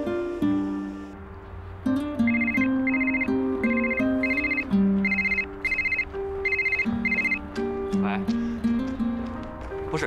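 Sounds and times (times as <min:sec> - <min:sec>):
background music with plucked notes: 0:00.0 - 0:10.0
mobile phone ringing: 0:02.2 - 0:07.4.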